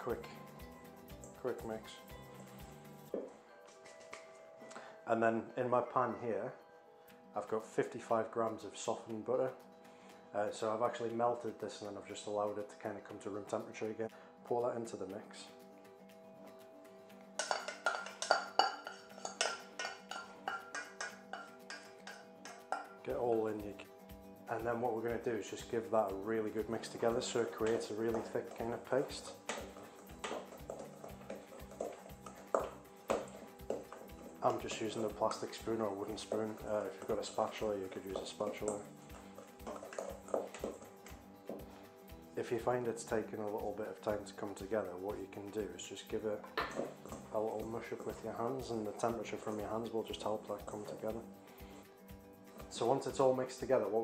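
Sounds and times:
background music: 0.0s - 54.0s
spoon scraping a saucepan: 17.4s - 23.0s, 26.8s - 41.9s.

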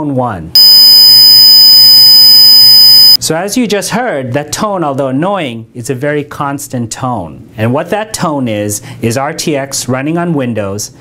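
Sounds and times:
high-pitched computer speaker tone: 0.6s - 3.2s.

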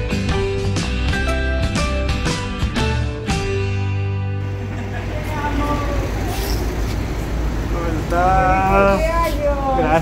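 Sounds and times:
low traffic rumble: 4.4s - 10.0s.

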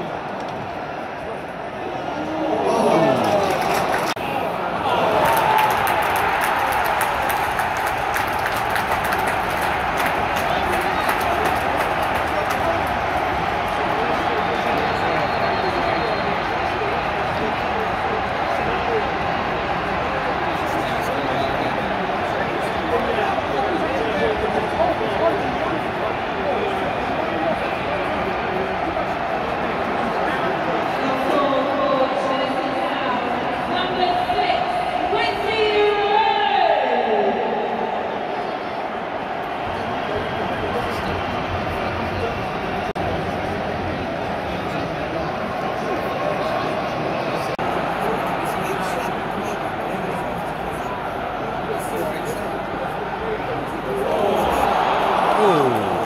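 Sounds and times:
stadium crowd hubbub: 0.0s - 56.0s.

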